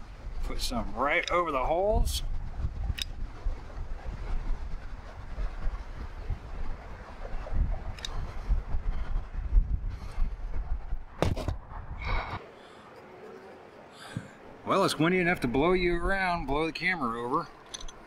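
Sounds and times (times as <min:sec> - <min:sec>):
wind buffeting microphone: 0:00.0 - 0:12.4, 0:15.4 - 0:16.7.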